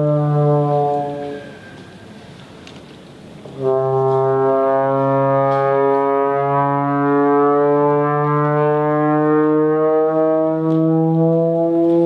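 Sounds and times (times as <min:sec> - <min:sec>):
trombone sliding low note: 0:00.0 - 0:02.3, 0:03.4 - 0:12.0.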